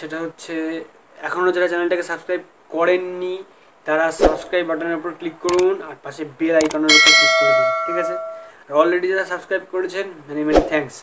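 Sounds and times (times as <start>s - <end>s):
bell chime: 6.9s - 8.6s.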